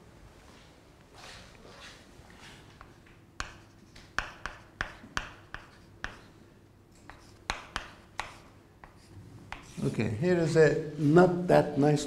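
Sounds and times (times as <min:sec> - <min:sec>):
faint chalk scratching: 0:01.7 - 0:10.2
chalk tapping on blackboard: 0:02.8 - 0:06.4, 0:07.0 - 0:09.8.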